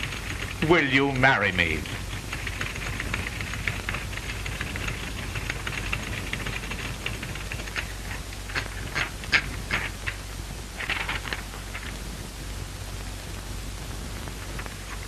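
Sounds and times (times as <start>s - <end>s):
typewriter keys clacking: 0.0s - 9.9s
film soundtrack hum and hiss: 0.0s - 15.0s.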